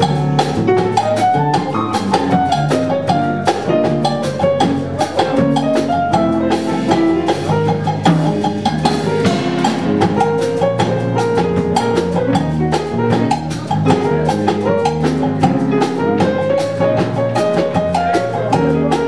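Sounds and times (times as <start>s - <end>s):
jazz quartet playing ballad: 0.0s - 19.0s.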